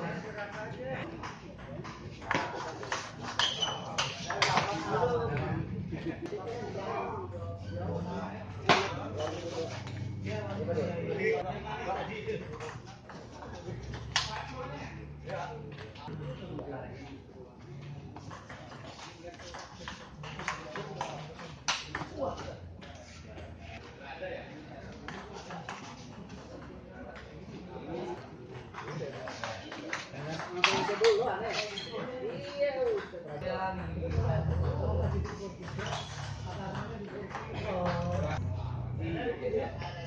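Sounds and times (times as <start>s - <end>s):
people's voices: 0.0s - 40.0s.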